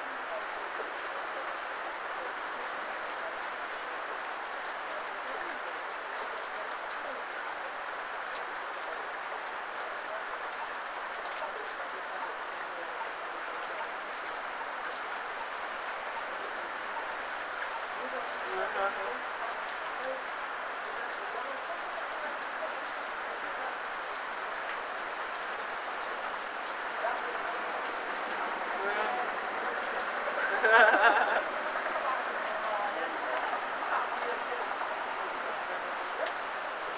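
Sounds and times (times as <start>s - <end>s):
heavy rain on road and foliage: 0.0s - 36.9s.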